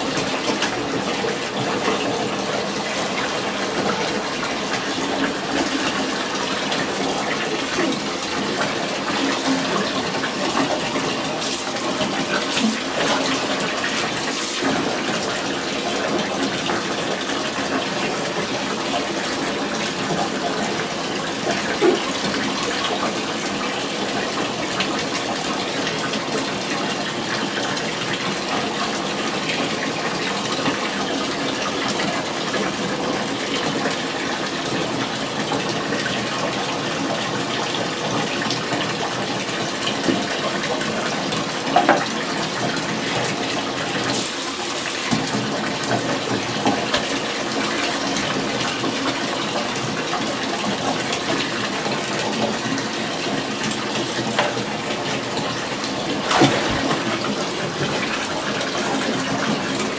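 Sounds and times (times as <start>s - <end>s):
tap running into bathtub: 0.0s - 59.9s.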